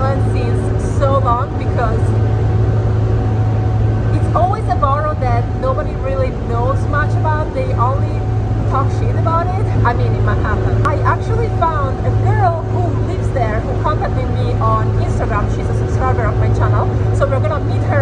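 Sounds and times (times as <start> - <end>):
woman talking: 0.0 - 2.2, 4.1 - 18.0
ferry engines droning: 0.0 - 18.0.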